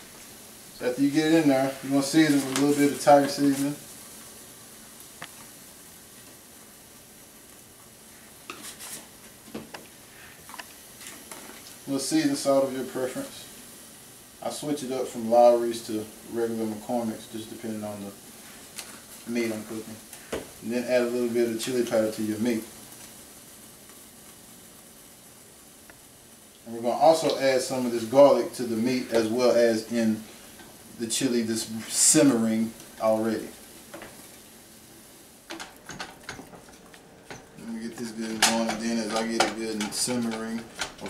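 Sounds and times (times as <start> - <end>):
meat sizzling in a frying pan: 0.0 - 41.0
seasoning shaker rattling: 35.5 - 41.0.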